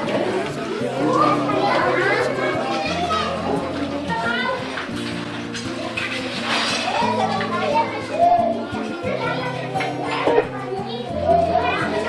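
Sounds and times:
children talking and calling: 0.0 - 12.0.

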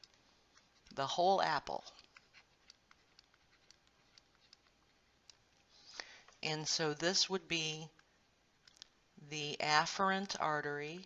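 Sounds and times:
stylus ticking on drawing tablet: 2.6 - 5.4.

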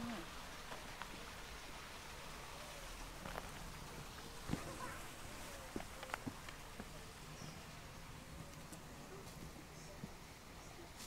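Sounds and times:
faint outdoor background hiss: 0.0 - 11.0.

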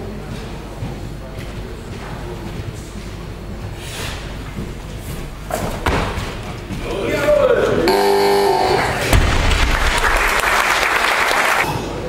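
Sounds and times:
feet stamping on platform: 0.2 - 7.7.

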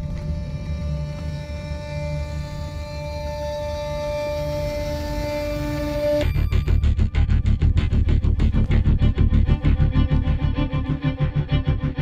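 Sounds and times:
low rumbling drone: 0.0 - 12.0
suspenseful film score: 0.0 - 12.0.

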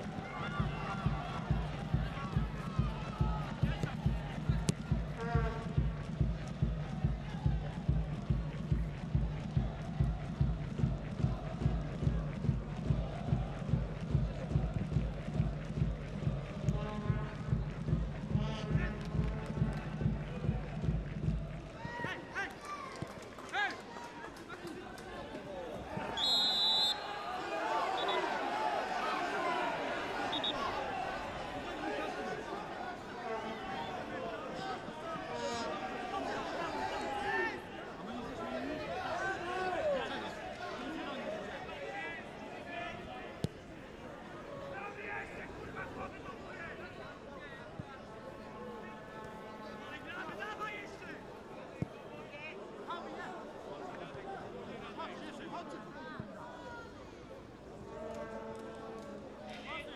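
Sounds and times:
crowd chanting: 0.0 - 21.7, 25.2 - 51.7
crowd murmur: 0.0 - 59.9
bass drum beating: 0.6 - 21.6
referee's whistle blast: 26.0 - 28.5, 30.2 - 30.9.

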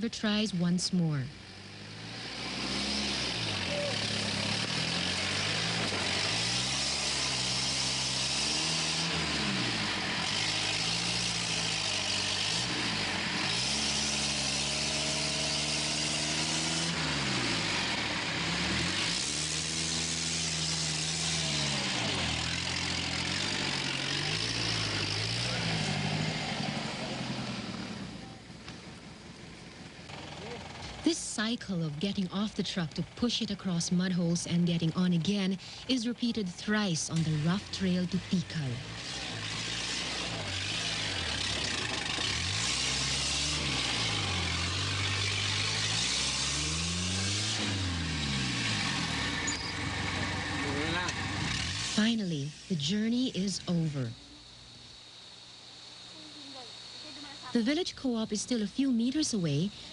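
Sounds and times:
truck engine revving hard: 1.4 - 28.2, 29.5 - 54.2.

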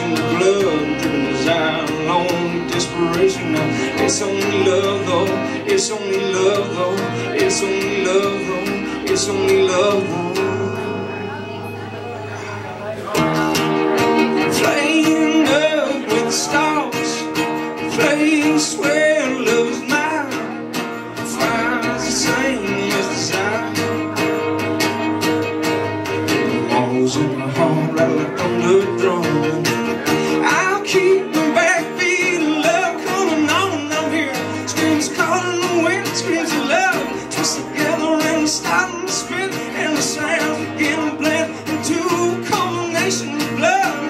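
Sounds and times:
fiddle melody: 0.0 - 44.0
strummed acoustic guitar: 0.0 - 44.0
upright bass: 0.0 - 44.0.

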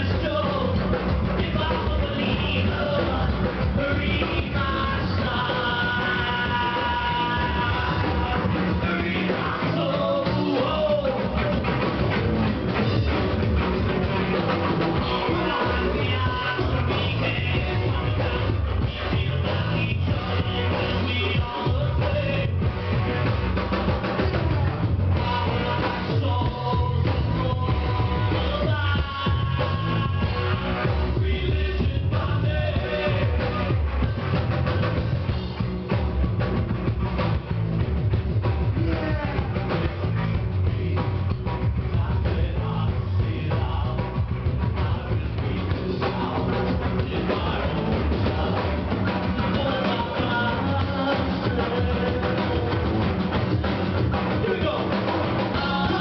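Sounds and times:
person singing: 0.0 - 12.1, 14.0 - 34.2, 38.6 - 56.0
drum kit: 0.0 - 56.0
electric guitar: 0.0 - 56.0.

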